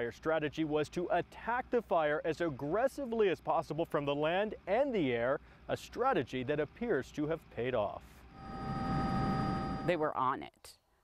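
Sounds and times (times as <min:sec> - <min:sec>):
aircraft engine drone: 0:08.2 - 0:09.9
high whining tones: 0:08.3 - 0:10.0.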